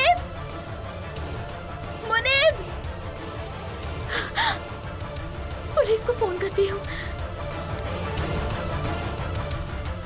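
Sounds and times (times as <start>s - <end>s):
low tense background music: 0.0s - 10.0s.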